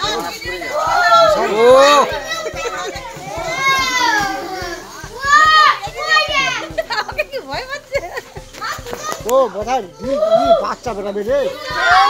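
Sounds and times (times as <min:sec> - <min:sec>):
high-pitched excited voices calling: 0:00.0 - 0:12.0.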